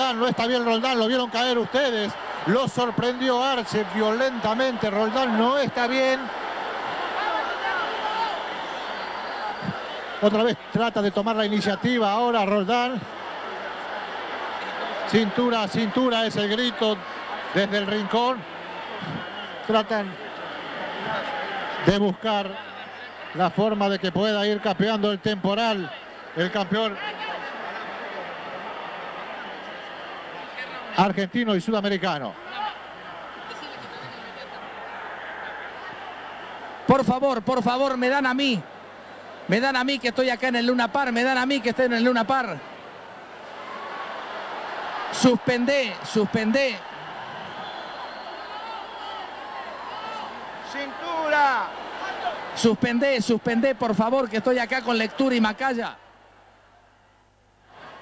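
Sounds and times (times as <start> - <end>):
crowd hubbub: 32.4 - 36.9.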